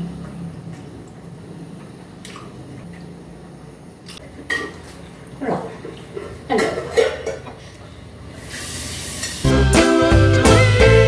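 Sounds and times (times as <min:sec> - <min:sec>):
music with strong bass line: 0:09.5 - 0:11.0.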